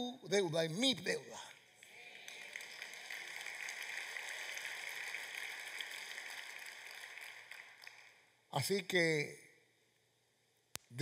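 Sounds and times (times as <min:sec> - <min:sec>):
crowd applauding: 0:01.8 - 0:08.2.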